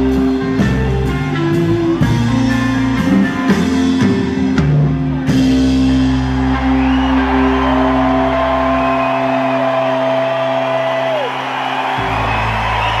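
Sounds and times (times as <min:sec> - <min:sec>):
bass guitar: 0:00.0 - 0:13.0
electric guitar sustained notes: 0:00.0 - 0:13.0
live band playing: 0:00.0 - 0:13.0.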